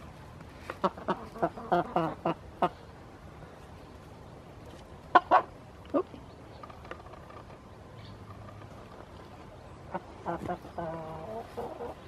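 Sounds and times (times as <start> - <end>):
chickens clucking: 0.6 - 3.0, 5.0 - 7.5, 8.1 - 12.0.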